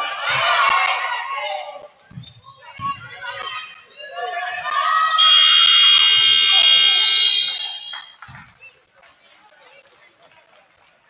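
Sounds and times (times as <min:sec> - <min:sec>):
scoreboard horn buzzing: 0:05.2 - 0:08.1.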